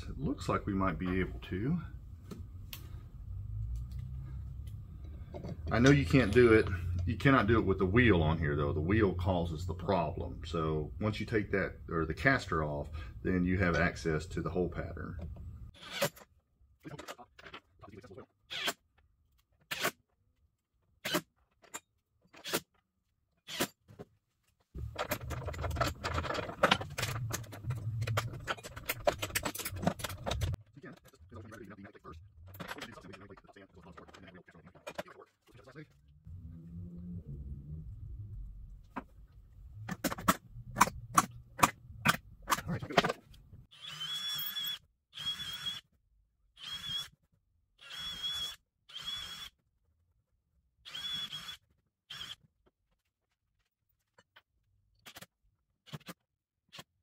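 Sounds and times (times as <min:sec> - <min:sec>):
tools and screws clattering: 0:21.1 - 0:22.8, 0:24.8 - 0:31.8, 0:32.4 - 0:35.5
cordless drill whirring bursts: 0:43.7 - 0:45.8, 0:47.8 - 0:49.5.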